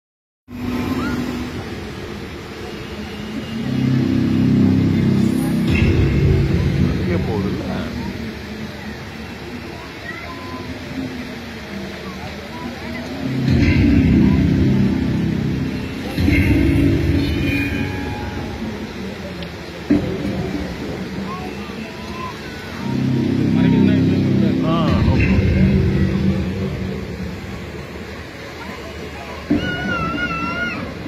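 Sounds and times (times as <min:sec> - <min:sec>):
water fountain rumbling din: 0:00.5 - 0:31.0
people's voices: 0:00.6 - 0:31.0.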